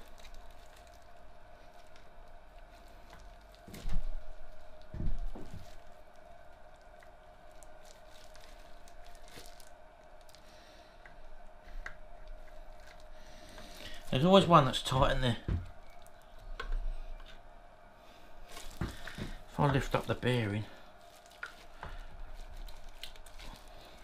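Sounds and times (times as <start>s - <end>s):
faint steady hum: 0.0s - 24.0s.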